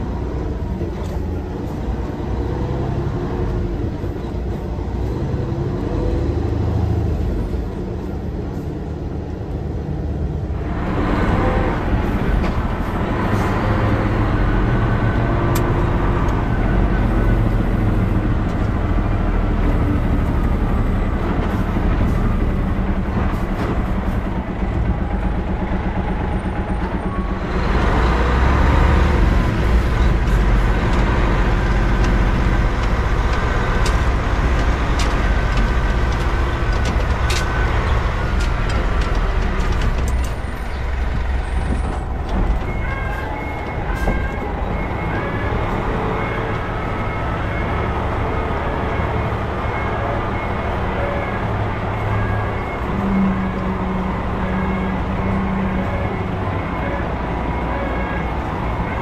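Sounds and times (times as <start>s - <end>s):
diesel truck engine running: 0.0s - 59.0s
road noise: 0.0s - 59.0s.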